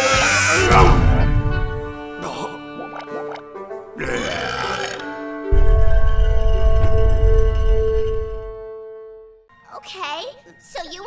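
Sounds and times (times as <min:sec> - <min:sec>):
film music with sustained notes: 0:00.0 - 0:11.0.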